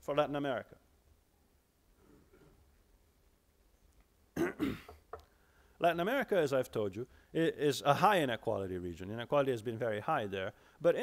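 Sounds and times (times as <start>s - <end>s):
man clearing his throat: 4.4s - 5.0s.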